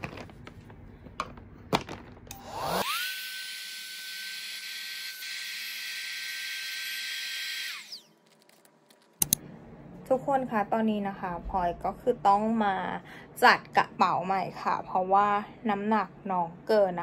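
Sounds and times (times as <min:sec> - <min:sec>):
electric vacuum pump whining: 0:02.2 - 0:08.5.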